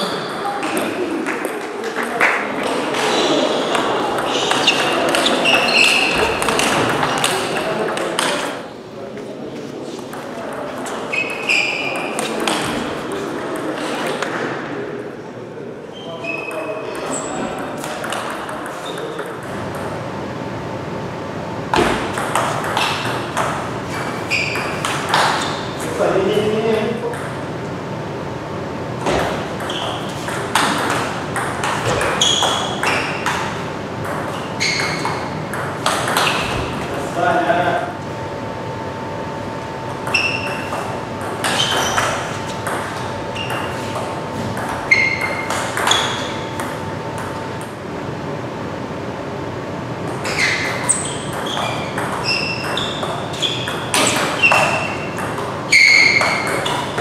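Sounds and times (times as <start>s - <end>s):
ping pong ball on paddles: 0.0s - 8.6s, 10.1s - 14.4s, 16.2s - 20.1s, 21.7s - 26.0s, 27.0s - 27.4s, 29.0s - 37.0s, 39.8s - 47.8s, 50.0s - 57.0s
voices murmuring: 0.0s - 20.2s
echoing hall noise: 0.0s - 57.0s
ball bouncing on table: 3.7s - 8.6s, 17.8s - 19.9s, 21.7s - 25.4s, 29.0s - 36.8s, 40.0s - 47.8s, 50.1s - 57.0s.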